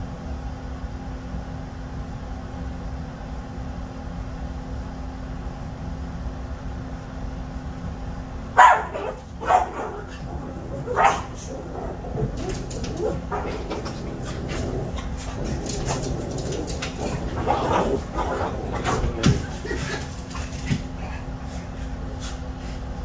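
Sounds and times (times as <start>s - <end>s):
steady low hum: 0.0s - 23.0s
small dog barking: 8.6s - 16.0s
dog scrabbling on blanket: 8.6s - 22.3s.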